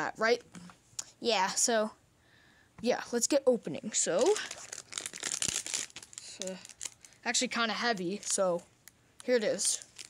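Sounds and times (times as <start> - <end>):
foil wrapper crinkling: 4.1 - 8.6, 9.2 - 10.0.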